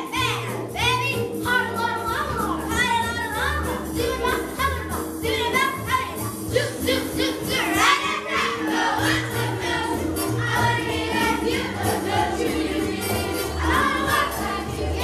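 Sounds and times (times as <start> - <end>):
children singing: 6.5 - 15.0.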